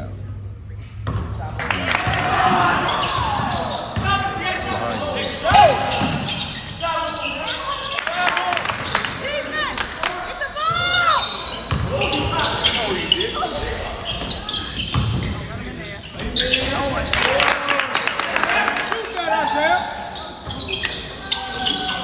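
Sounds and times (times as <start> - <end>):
voices calling out: 1.6 - 22.0
shoes squeaking on court: 2.1 - 8.1, 10.7 - 17.1, 19.2 - 22.0.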